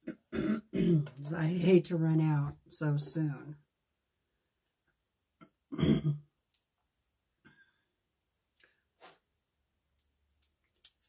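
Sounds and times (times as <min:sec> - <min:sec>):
woman clearing her throat: 0:00.0 - 0:01.2, 0:05.7 - 0:06.3.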